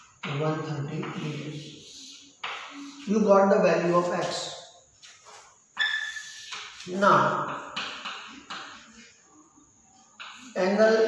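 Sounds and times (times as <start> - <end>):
chalk squeaking on chalkboard: 0.1 - 9.3, 10.1 - 11.0.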